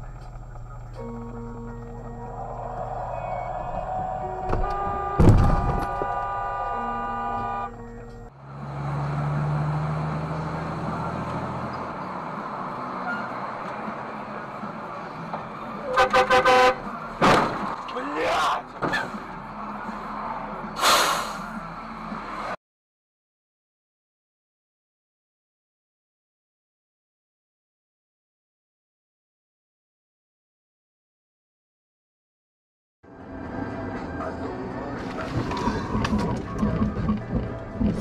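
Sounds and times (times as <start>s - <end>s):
music in a car: 0.0s - 5.1s
car engine and road noise: 0.0s - 22.6s, 33.0s - 38.0s
car horn toots: 3.2s - 8.0s, 15.9s - 16.9s.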